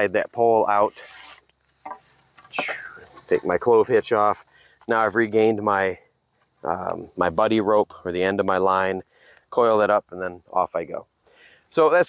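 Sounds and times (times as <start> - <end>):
cord and pole rustling: 0.7 - 5.0.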